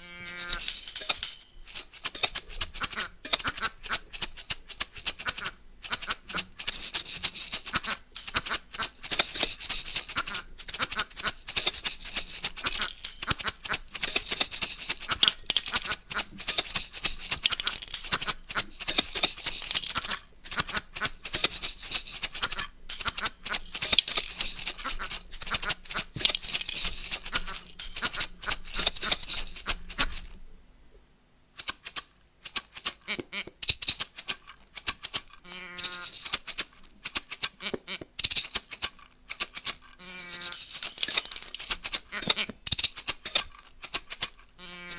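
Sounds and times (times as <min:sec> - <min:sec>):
hand shakers rattling: 0:00.3 - 0:30.3, 0:33.6 - 0:37.6, 0:38.2 - 0:44.9.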